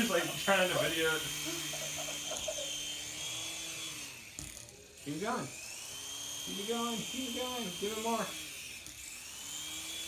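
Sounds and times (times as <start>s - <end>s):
rotor blades buzzing: 0.0s - 10.0s
toy helicopter motor whine: 0.0s - 10.0s.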